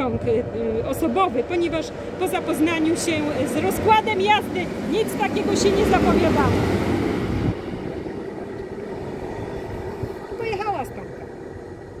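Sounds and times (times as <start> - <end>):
diesel locomotive engine drone: 0.0 - 12.0.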